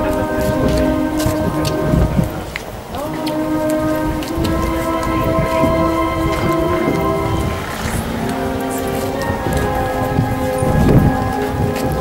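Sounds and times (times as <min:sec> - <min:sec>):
brass band playing held chords: 0:00.0 - 0:12.0
heavy low rumble: 0:00.0 - 0:12.0.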